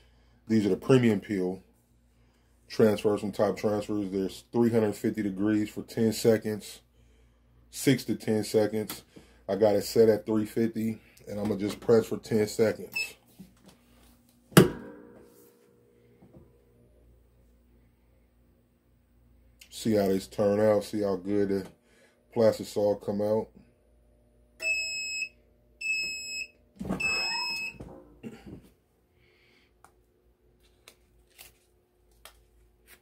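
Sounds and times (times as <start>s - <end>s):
heat press metallic clunk: 14.6s - 15.1s.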